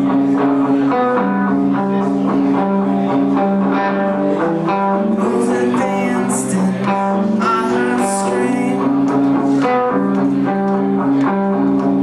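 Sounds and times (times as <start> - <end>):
live guitar-led band music: 0.0 - 12.0.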